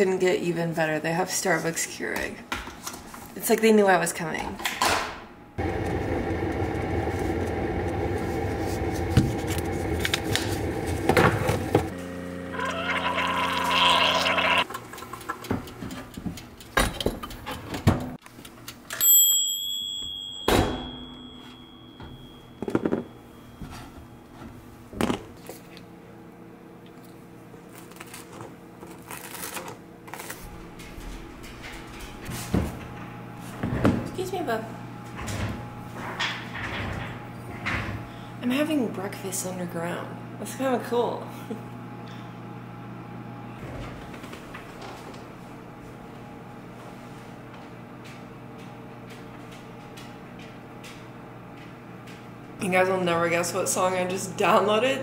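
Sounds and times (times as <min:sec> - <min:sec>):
coffee maker brewing hum: 0:05.6 - 0:16.6
timer bell ringing: 0:18.9 - 0:23.6.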